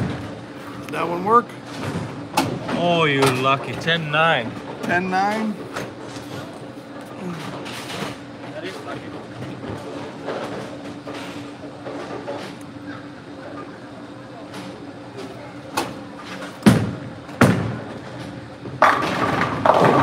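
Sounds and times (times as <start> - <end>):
bowling pins crashing: 16.6 - 20.0
bowling ball knock: 18.8 - 20.0
bowling ball thud on lane: 18.8 - 20.0.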